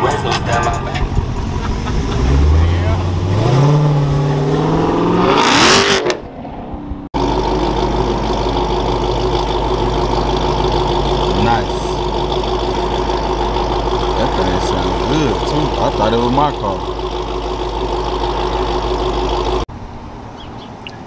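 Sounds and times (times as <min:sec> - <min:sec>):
car engine accelerating and idling: 0:00.0 - 0:20.6.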